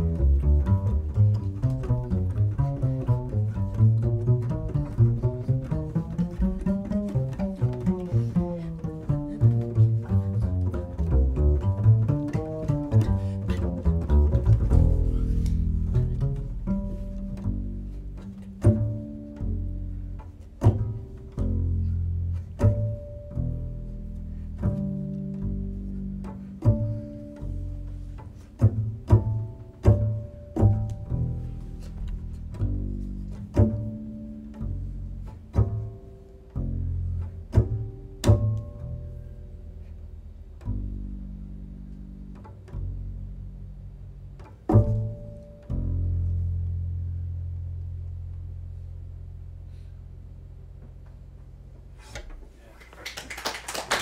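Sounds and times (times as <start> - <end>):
double bass plucked notes: 0.0 - 52.7.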